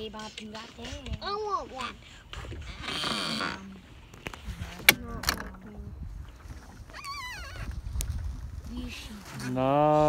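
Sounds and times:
rumble of wind and water: 0.7s - 10.0s.

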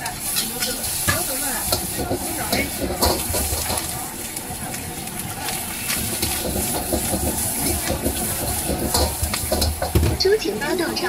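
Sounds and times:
steam hissing: 0.0s - 4.6s, 5.4s - 10.9s
food sizzling in a wok: 0.0s - 11.0s
gas burner rumble: 0.0s - 11.0s.

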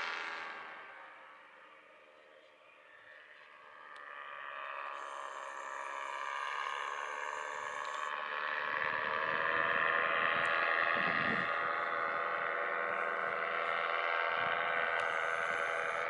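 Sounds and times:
paramotor engine droning: 0.0s - 16.0s
wind rumble on microphone: 8.5s - 13.4s.

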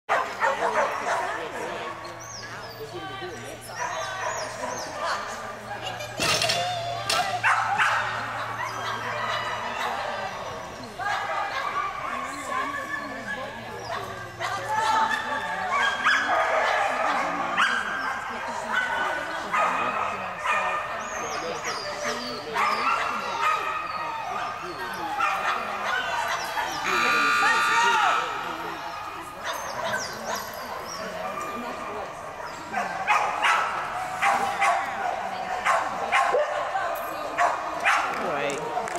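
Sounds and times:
dog barking: 0.1s - 1.4s, 7.4s - 10.1s, 13.9s - 20.9s, 25.0s - 28.3s, 32.4s - 36.7s, 37.4s - 38.1s
people's voices: 0.1s - 38.9s
dog barking and yipping: 32.4s - 34.8s.

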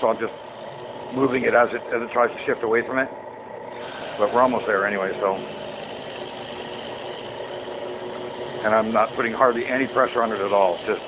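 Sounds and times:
drill press cutting metal: 0.0s - 11.0s.

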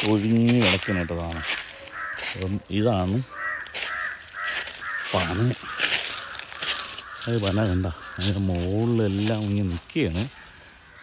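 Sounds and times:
man's voice: 0.0s - 1.6s, 7.2s - 10.4s
bird repeated calls: 0.0s - 11.0s.

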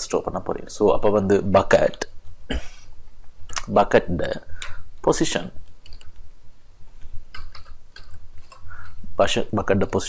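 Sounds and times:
computer keyboard typing: 5.7s - 6.2s, 7.3s - 9.0s.

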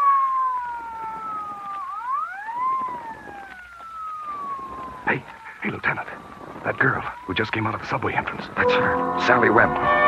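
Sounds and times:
police siren wailing: 0.0s - 10.0s.

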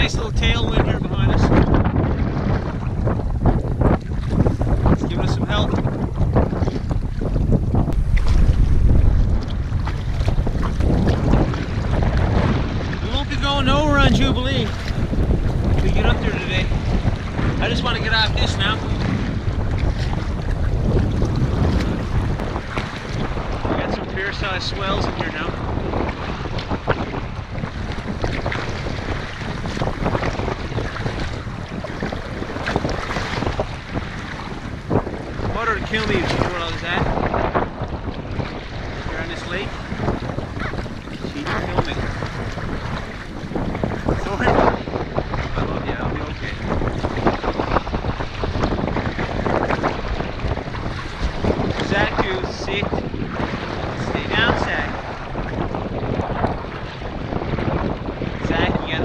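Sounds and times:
strong wind buffeting microphone: 0.0s - 59.0s
water splashing against kayak: 0.0s - 59.0s.

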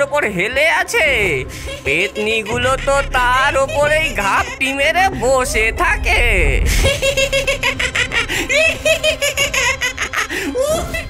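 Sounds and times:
cartoon ghost laughing: 1.7s - 11.0s.

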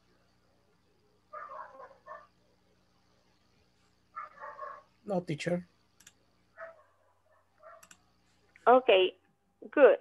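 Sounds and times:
faint animal calls: 1.3s - 2.5s.

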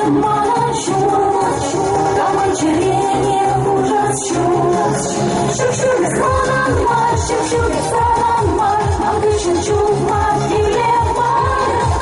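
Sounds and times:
women singing pop song: 0.0s - 12.0s.

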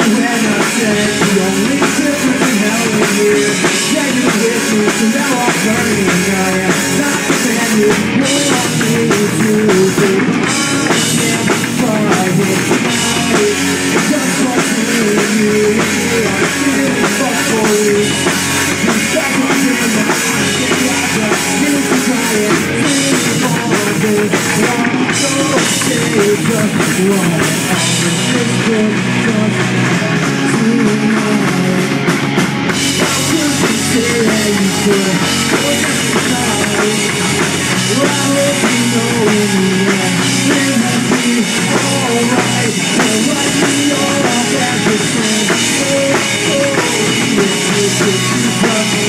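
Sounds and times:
person singing: 0.0s - 32.2s, 32.8s - 49.0s
bass guitar: 0.0s - 49.0s
drum kit: 0.0s - 49.0s
electric guitars: 0.0s - 49.0s.

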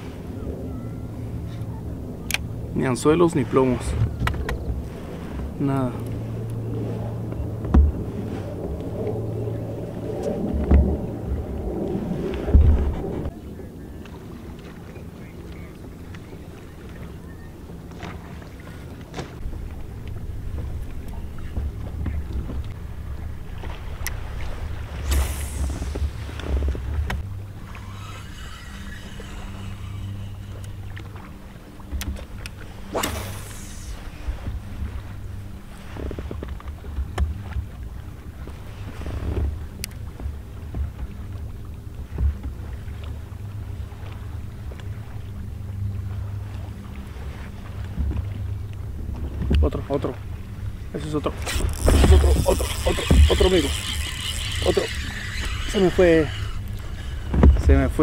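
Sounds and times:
wind buffeting microphone: 0.0s - 14.6s, 50.3s - 58.0s
short swishes: 24.9s - 31.1s, 32.8s - 34.3s.

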